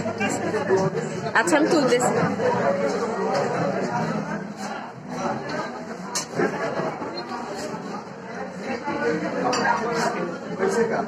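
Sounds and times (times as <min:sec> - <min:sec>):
people talking in echoing room: 0:00.0 - 0:11.0.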